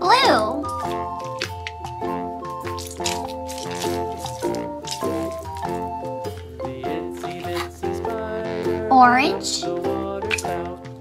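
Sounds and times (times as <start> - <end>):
light background music: 0.0 - 11.0
squishy stress ball squelching: 0.5 - 6.6, 7.4 - 8.1, 10.2 - 10.6.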